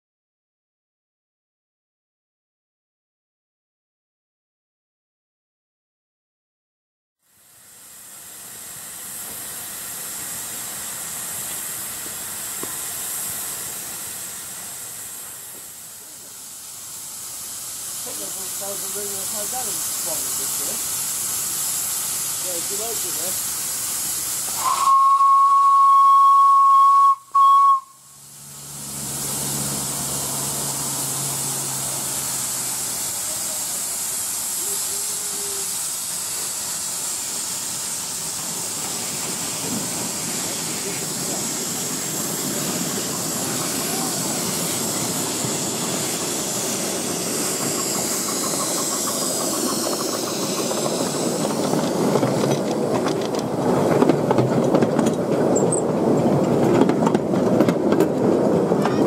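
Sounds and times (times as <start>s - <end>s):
steam hissing: 7.2s - 59.0s
drain cocks blowing steam: 7.3s - 53.7s
train running past: 7.4s - 59.0s
steam locomotive whistle: 24.5s - 28.2s.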